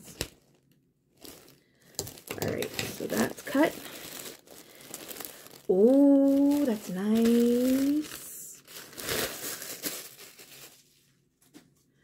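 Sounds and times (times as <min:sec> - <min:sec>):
plastic bag crinkling: 0:00.0 - 0:11.2.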